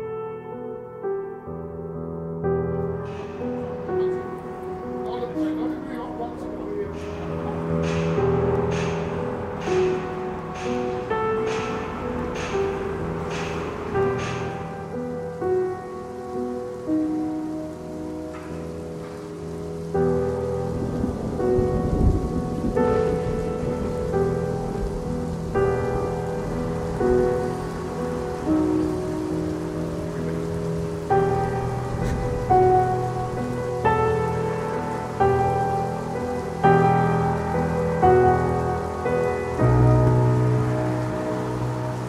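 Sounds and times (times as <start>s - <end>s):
rain: 0.0s - 42.0s.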